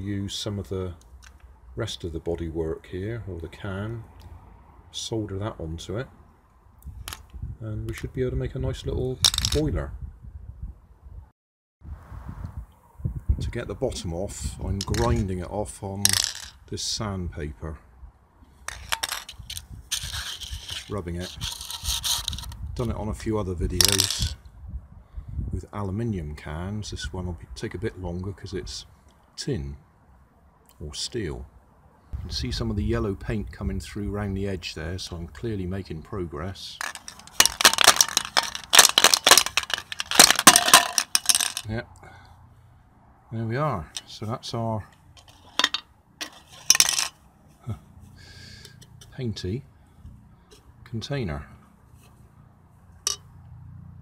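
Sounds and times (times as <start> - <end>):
metallic clinking and rattling: 14.8 - 15.2, 16.1 - 16.6, 18.7 - 22.6, 23.8 - 24.4, 36.8 - 41.7, 45.2 - 47.2, 53.0 - 53.3
metal can scraping on sandpaper: 18.7 - 22.6, 46.2 - 46.7.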